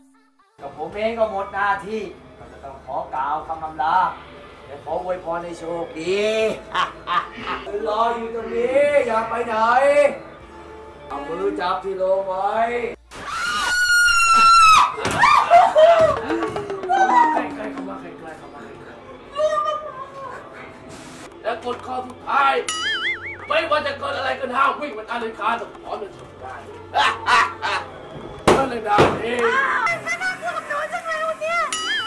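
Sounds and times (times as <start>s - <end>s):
woman screaming: 13.2s - 16.1s, 16.9s - 17.5s, 19.3s - 20.3s
woman crying out: 13.9s - 17.6s, 19.3s - 20.5s.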